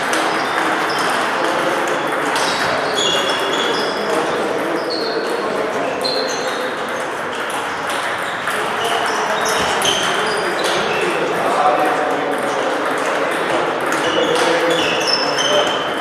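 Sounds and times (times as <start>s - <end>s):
table tennis balls clicking: 0.0s - 16.0s.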